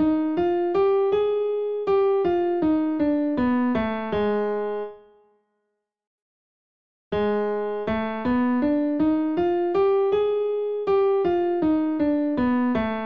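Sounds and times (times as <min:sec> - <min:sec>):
piano playing scale: 0:00.0 - 0:05.2, 0:07.1 - 0:13.0.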